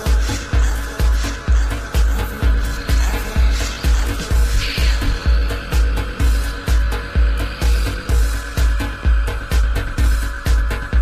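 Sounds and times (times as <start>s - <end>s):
hi-hat ticks: 0.0s - 11.0s
techno kick drum: 0.0s - 11.0s.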